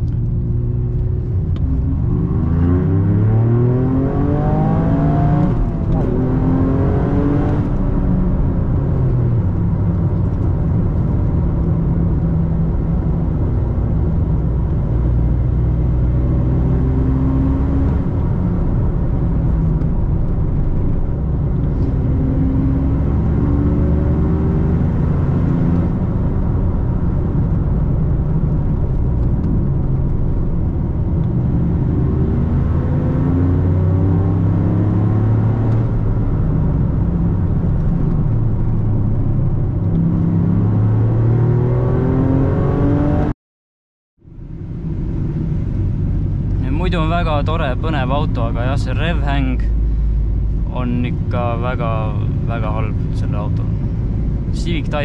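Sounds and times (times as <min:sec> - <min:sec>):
car engine accelerating: 0:00.0 - 0:43.3
road and tyre noise: 0:00.0 - 0:43.3, 0:44.2 - 0:55.0.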